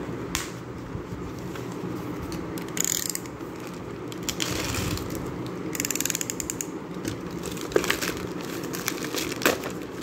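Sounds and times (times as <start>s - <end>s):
plastic mailer rustling: 7.2s - 10.0s.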